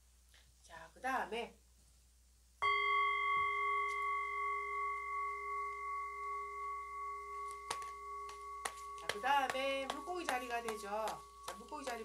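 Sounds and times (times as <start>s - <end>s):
singing bowl ringing: 2.6s - 12.0s.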